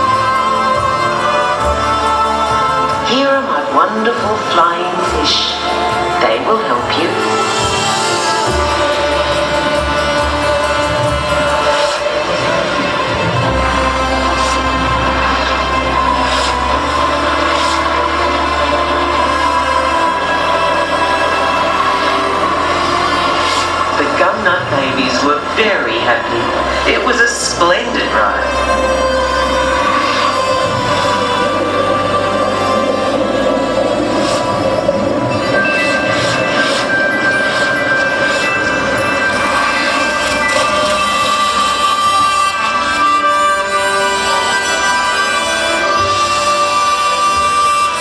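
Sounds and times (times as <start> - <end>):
held tones over low drone: 0.0 - 48.0
show soundtrack over loudspeakers: 0.0 - 48.0
voices: 0.0 - 48.0.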